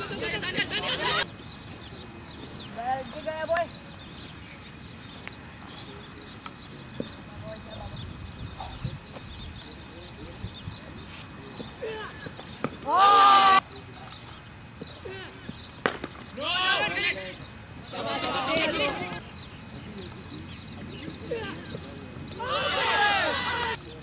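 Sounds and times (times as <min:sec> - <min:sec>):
players shouting: 0:00.0 - 0:01.3, 0:11.8 - 0:13.6, 0:16.2 - 0:19.2, 0:21.1 - 0:23.9.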